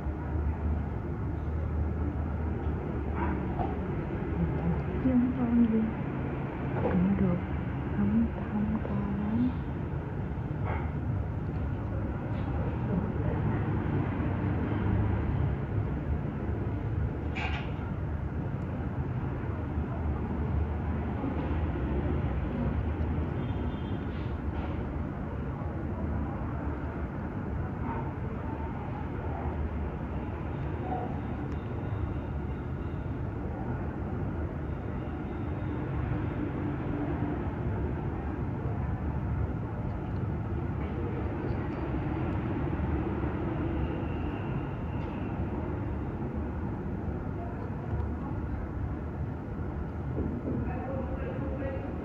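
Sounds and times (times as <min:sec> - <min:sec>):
faint indistinct voices: 0:00.0 - 0:52.0
low rumbling background noise: 0:00.0 - 0:52.0.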